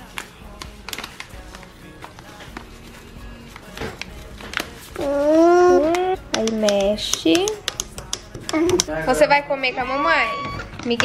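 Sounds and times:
quiet background music: 0.0 - 11.0.

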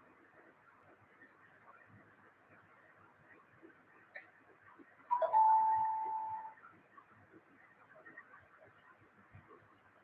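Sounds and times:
chime-like tone: 5.1 - 6.6.

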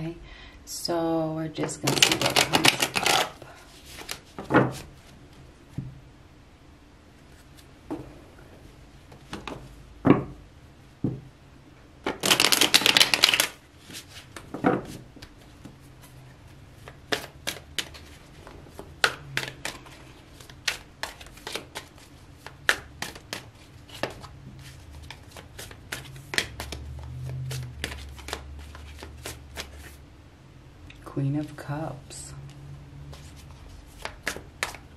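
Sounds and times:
cards riffle-shuffled: 1.8 - 4.9, 12.1 - 16.1, 16.8 - 30.0, 33.1 - 34.9.

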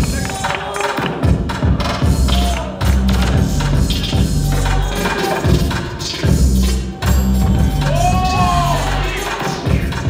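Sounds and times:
hip hop beat over sound system: 0.0 - 10.0.

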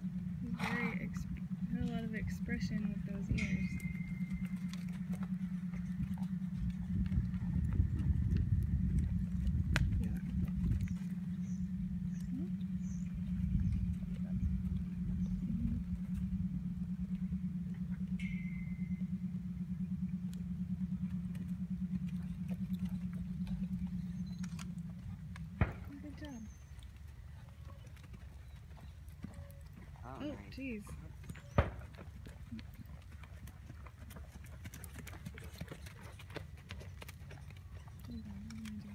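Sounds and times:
low thuds and rumbling: 0.0 - 26.6
low engine hum: 0.0 - 38.9.

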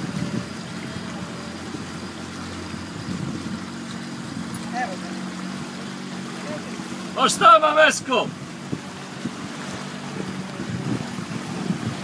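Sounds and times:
motorboat engine humming: 0.0 - 12.0
rush of wind and water: 0.0 - 12.0.

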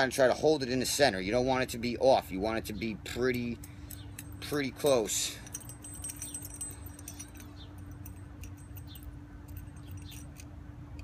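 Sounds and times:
steady low hum: 0.0 - 11.0
small metal hardware clinking: 3.1 - 11.0.

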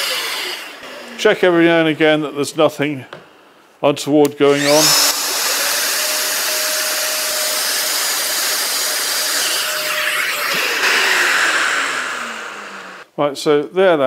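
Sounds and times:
motor winding down: 0.0 - 1.2, 4.5 - 13.0
router cutting wood: 0.0 - 1.4, 4.5 - 13.0.

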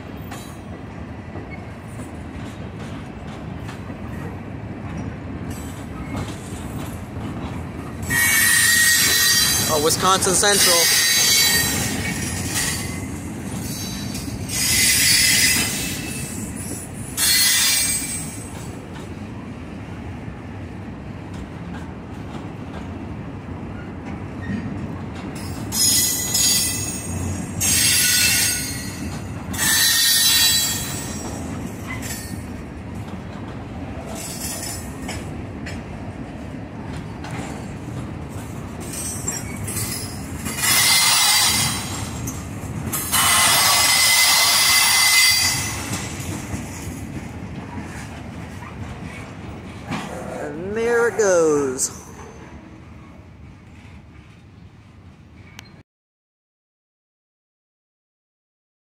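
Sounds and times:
steel wheels rumbling on rail: 0.0 - 55.8.

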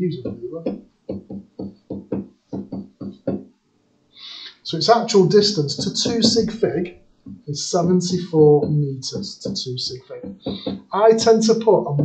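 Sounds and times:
man muttering sing-song syllables: 0.0 - 3.4, 4.2 - 12.0.

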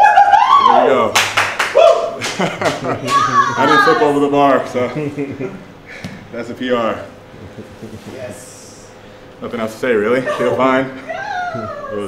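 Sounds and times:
sharp hand claps: 1.1 - 3.3.

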